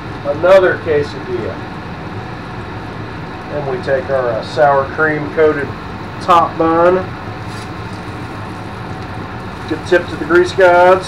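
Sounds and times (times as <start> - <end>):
background hum and hiss: 0.0 - 11.0.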